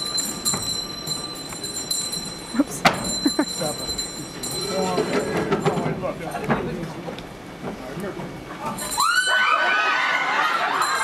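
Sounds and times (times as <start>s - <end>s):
audience laughter: 9.3s - 11.0s.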